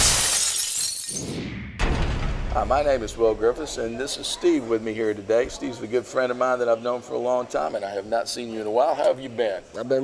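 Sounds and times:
glass shattering crash: 0.0s - 2.7s
sudden hit: 1.2s - 3.8s.

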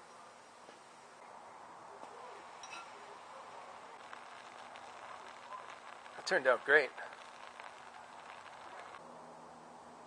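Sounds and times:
sandwich sizzling in skillet: 2.0s - 9.0s.

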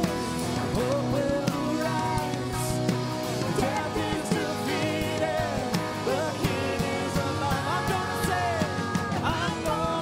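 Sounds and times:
live worship band playing: 0.0s - 10.0s.

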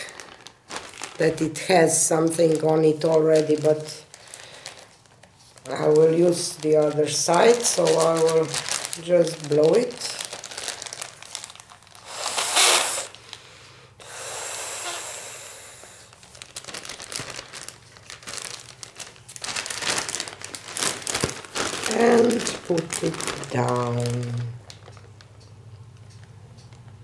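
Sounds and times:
plastic bag crinkling: 0.0s - 13.5s, 15.9s - 25.4s
air blown into bag: 12.0s - 13.4s, 14.0s - 16.1s.

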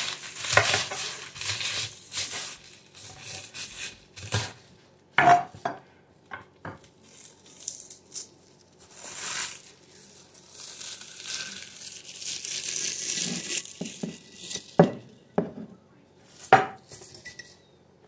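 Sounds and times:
dried leaves crinkling and tearing: 0.0s - 4.6s, 6.8s - 14.8s.

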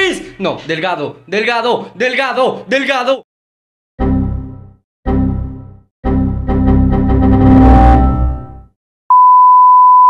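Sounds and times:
computer error alert sound: 7.4s - 8.6s
steady test tone beep: 9.1s - 10.0s.

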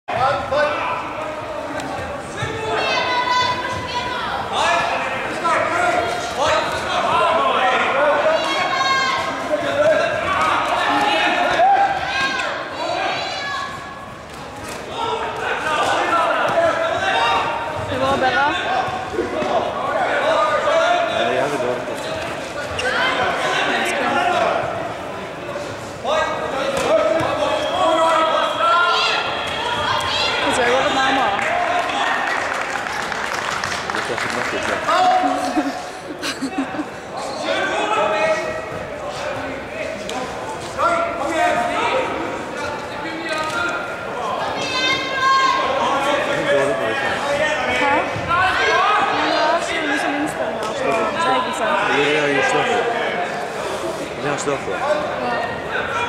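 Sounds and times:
voices calling out in a hall: 0.1s - 56.0s.

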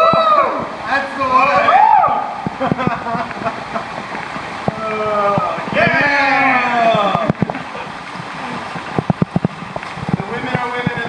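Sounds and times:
water sloshing and splashing: 0.0s - 11.0s.

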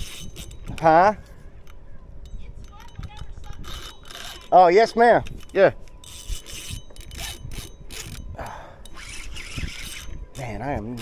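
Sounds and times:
fishing reel rasping scrape: 0.0s - 11.0s.

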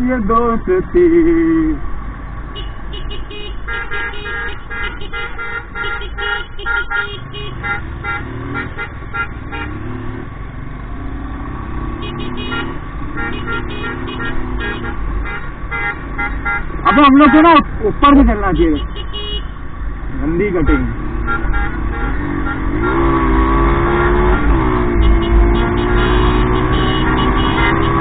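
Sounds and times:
motorcycle engines rumbling: 0.0s - 28.0s
short rapid horn toots: 20.7s - 28.0s.

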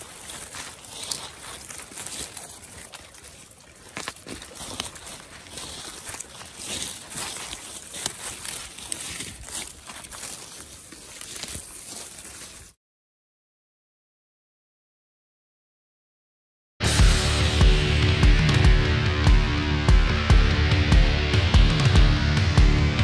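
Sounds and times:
footsteps in leaves: 0.0s - 12.8s
leaves rustling and crackling: 0.0s - 12.8s.

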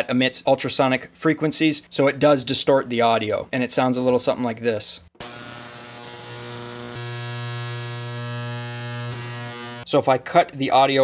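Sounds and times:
ultrasonic cleaner buzzing hum: 5.2s - 9.9s.

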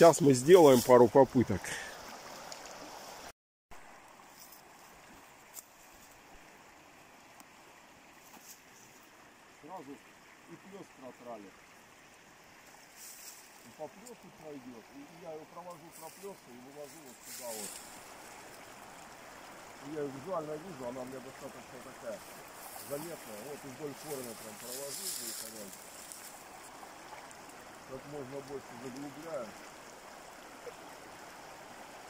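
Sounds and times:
river water rushing: 0.0s - 32.0s.

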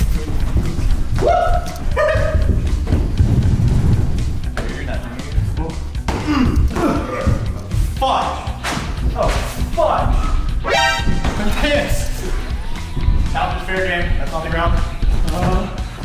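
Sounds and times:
thumps of people running: 0.0s - 7.6s, 8.6s - 16.0s
background music: 0.0s - 16.0s
men shouting: 1.2s - 2.6s.

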